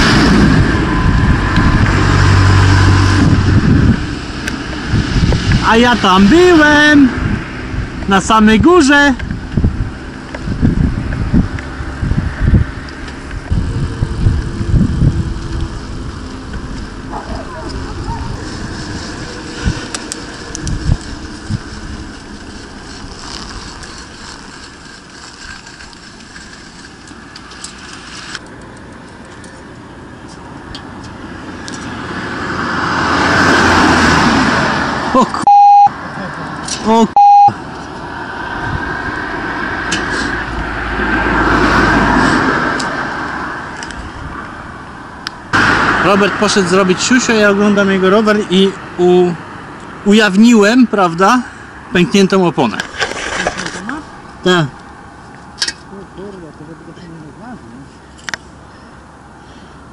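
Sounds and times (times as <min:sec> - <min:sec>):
cars passing: 0:00.0 - 0:59.9
road and wind noise: 0:00.0 - 0:59.9
short electronic beeps: 0:35.4 - 0:36.0, 0:37.2 - 0:37.6.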